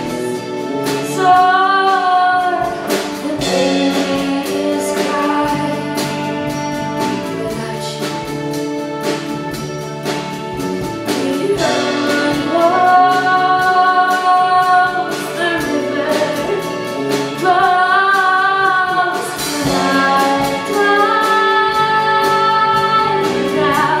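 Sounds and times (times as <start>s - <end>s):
woman singing with vibrato: 0.0s - 9.0s, 11.0s - 24.0s
instrumental accompaniment: 0.0s - 24.0s.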